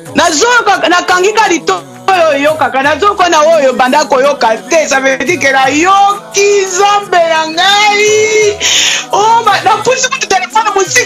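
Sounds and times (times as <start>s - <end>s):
high voice singing: 1.1s - 11.0s.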